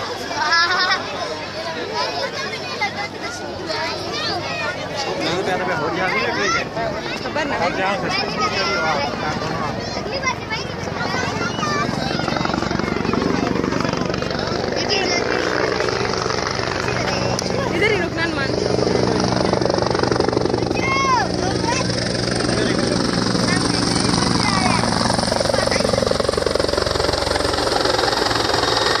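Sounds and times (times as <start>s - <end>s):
people's voices and shouts: 0.0s - 28.9s
helicopter rotor chopping: 0.0s - 29.0s.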